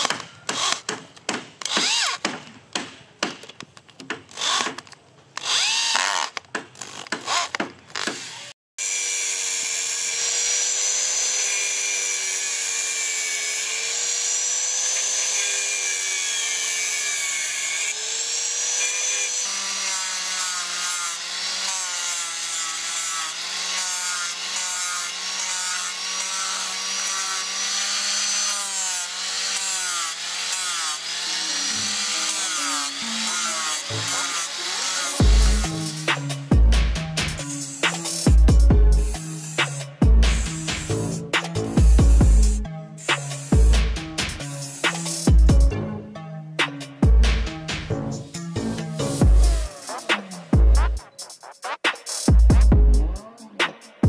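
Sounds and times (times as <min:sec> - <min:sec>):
cordless drill driving screws: 0:00.0 - 0:00.9, 0:01.6 - 0:02.2, 0:04.3 - 0:16.0
angle grinder sanding wood: 0:05.4 - 0:45.7, 0:46.6 - 0:51.5.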